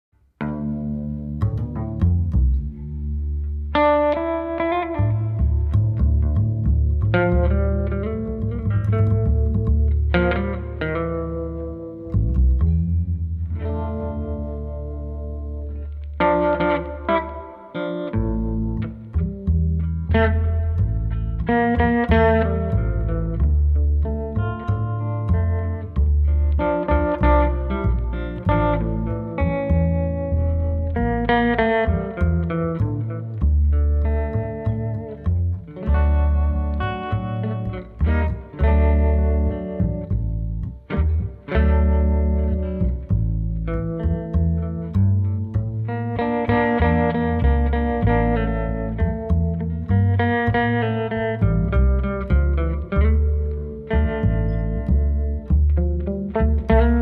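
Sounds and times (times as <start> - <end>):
plucked double bass: 0.2 - 57.0
electric guitar melody with reverb: 0.3 - 57.0.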